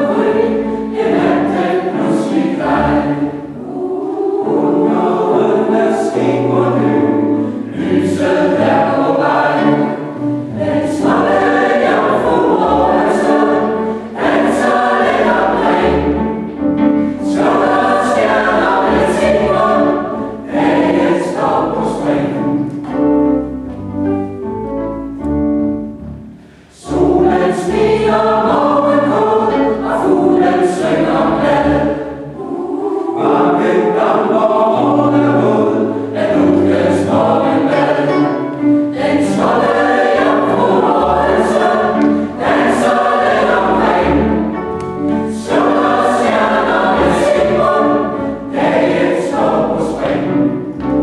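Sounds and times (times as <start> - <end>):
choir singing in a church: 0.0 - 51.0.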